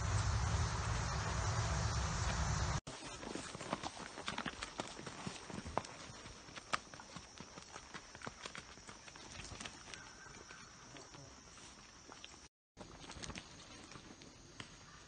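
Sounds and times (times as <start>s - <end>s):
horse hoofbeats on dirt: 2.4s - 14.3s.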